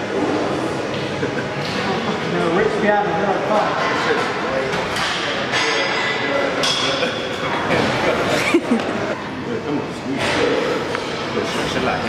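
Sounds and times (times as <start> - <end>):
voices and laughter: 1.0 - 2.6, 8.0 - 9.6.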